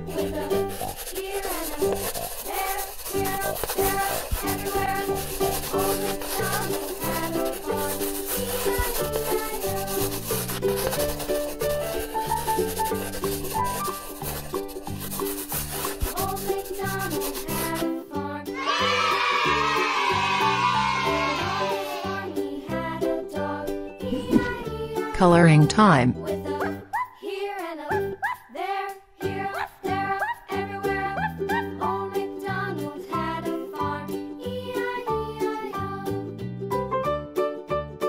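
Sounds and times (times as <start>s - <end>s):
marker felt tip rubbing on paper: 0.0s - 18.0s, 24.0s - 25.4s
background music: 21.6s - 38.0s.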